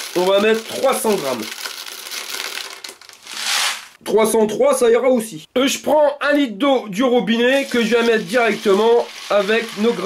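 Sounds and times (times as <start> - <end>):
pellets pouring into plastic bucket: 0.0 - 4.0, 7.5 - 10.0.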